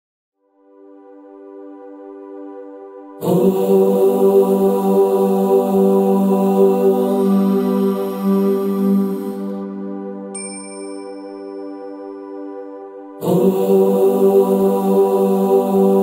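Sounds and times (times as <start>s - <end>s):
ambient music drone: 0.6s - 16.0s
voice chanting om: 1.8s - 10.4s, 12.2s - 16.0s
high bell-like chime: 10.4s - 12.4s.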